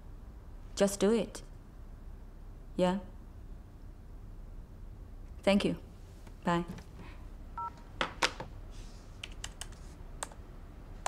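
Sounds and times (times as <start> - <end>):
computer keys clicking: 9.2 - 10.4.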